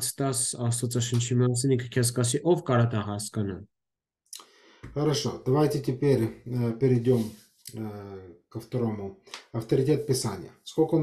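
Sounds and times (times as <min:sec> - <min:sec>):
man speaking over video call: 0:00.0 - 0:03.7, 0:04.4 - 0:11.0.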